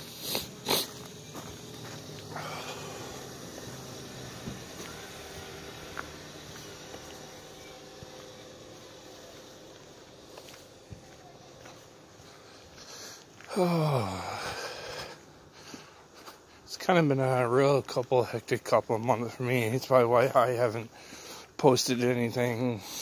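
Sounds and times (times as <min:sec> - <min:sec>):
close breathing: 0:00.0 - 0:03.8, 0:12.1 - 0:16.7, 0:20.9 - 0:21.6, 0:22.8 - 0:23.0.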